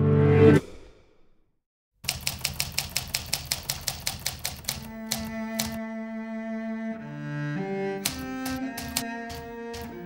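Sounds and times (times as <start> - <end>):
typewriter keystrokes: 2.0 - 5.8, 8.0 - 10.0.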